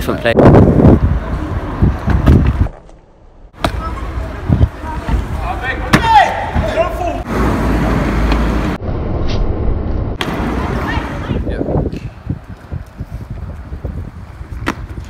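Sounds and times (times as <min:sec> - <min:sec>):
wind rumbling on microphone: 0:00.0 - 0:02.9, 0:03.8 - 0:05.4, 0:08.5 - 0:15.0.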